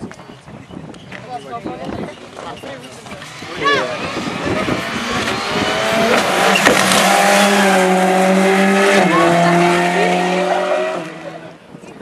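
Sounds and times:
rally car engine passing: 3.2 - 11.6.

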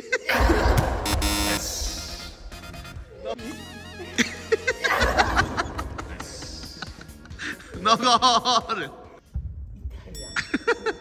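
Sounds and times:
buzzy electronic music sting: 0.5 - 3.8.

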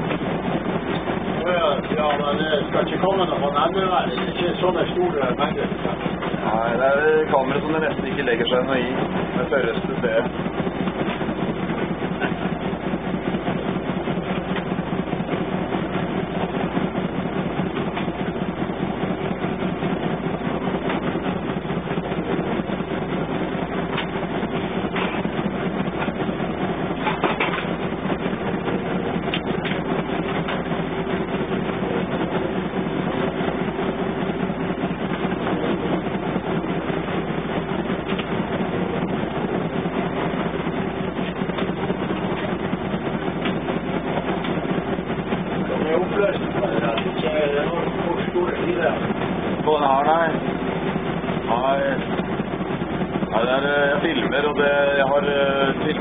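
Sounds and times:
diesel engine running: 0.0 - 56.0
wave slapping against bow: 0.0 - 56.0.

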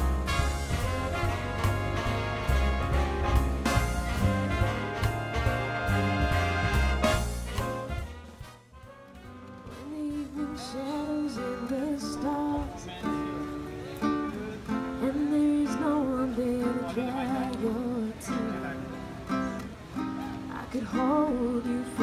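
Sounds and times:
classical guitar: 0.0 - 22.0
woman singing into a microphone: 9.7 - 12.9, 15.0 - 18.6, 20.3 - 22.0.

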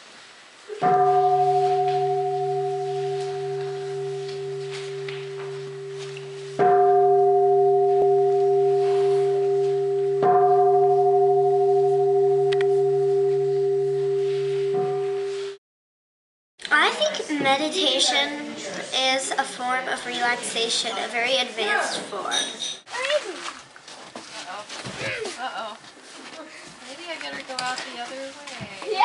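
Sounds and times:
meditation bowl struck and ringing: 0.8 - 15.6.

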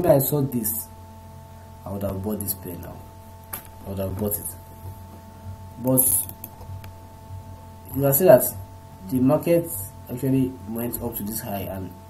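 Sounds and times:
electrical hum: 0.0 - 12.0
computer mouse clicks: 6.2 - 7.0.

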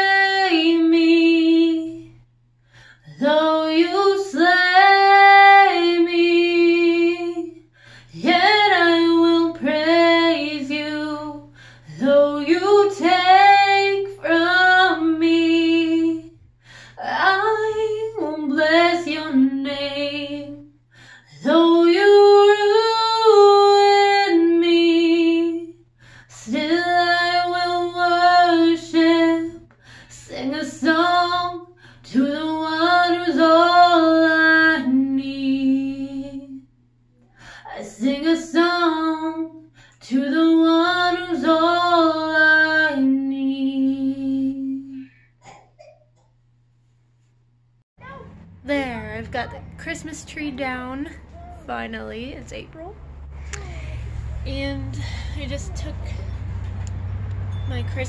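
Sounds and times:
woman singing unaccompanied: 0.0 - 2.2, 3.0 - 20.7, 21.3 - 36.7, 37.7 - 45.0, 54.4 - 56.3.

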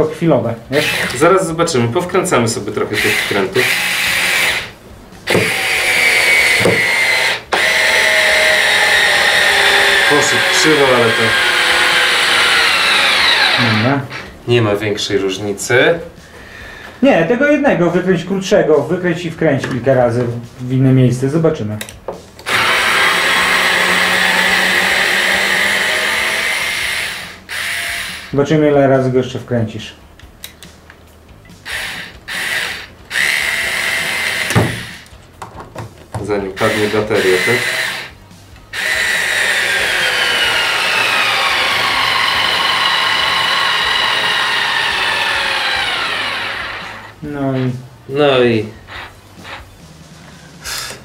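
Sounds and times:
cordless screwdriver whine: 5.3 - 14.3, 22.4 - 28.3, 31.6 - 35.1, 36.6 - 38.1, 38.8 - 47.2
breathy exhale: 16.2 - 17.0, 50.5 - 51.0.

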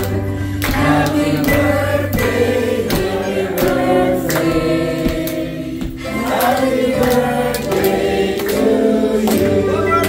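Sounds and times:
music with steady beat: 0.0 - 8.0
voices singing together: 0.0 - 10.0.

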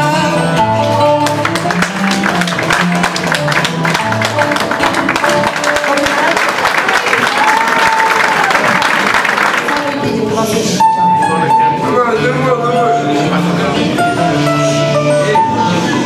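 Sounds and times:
guitars fast picked notes: 0.6 - 6.7
audience applause: 1.2 - 10.2.

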